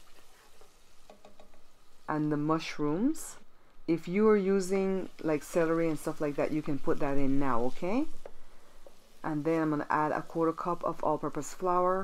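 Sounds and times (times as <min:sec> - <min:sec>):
onion sizzling in hot oil: 0:00.0 - 0:12.0.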